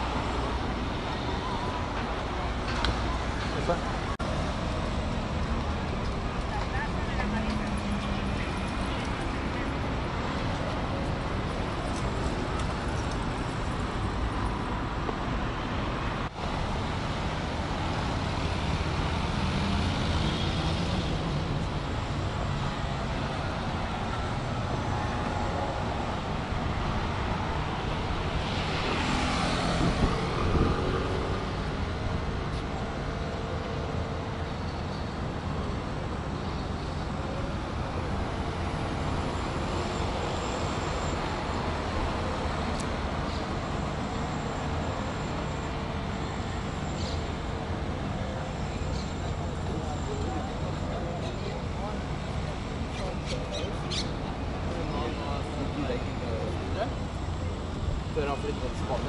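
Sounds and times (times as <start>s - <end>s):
city road traffic: 0.0s - 59.0s.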